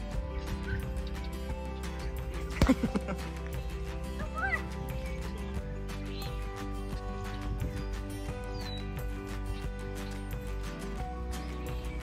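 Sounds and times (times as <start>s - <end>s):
background music: 0.0s - 12.0s
woman laughing: 2.6s - 3.3s.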